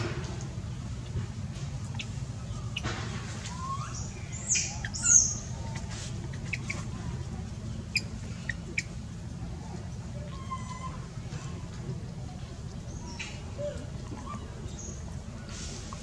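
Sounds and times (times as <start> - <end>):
baby monkey squealing: 3.5 - 6.9, 10.3 - 11.0.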